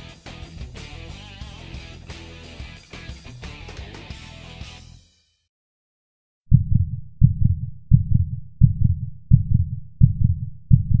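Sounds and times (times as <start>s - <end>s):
heartbeat thumps: 6.5s - 11.0s.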